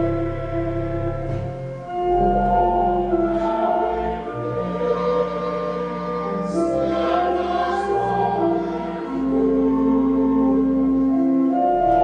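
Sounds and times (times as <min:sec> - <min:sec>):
church organ chords: 0:00.0 - 0:12.0
voices singing a hymn: 0:02.2 - 0:12.0.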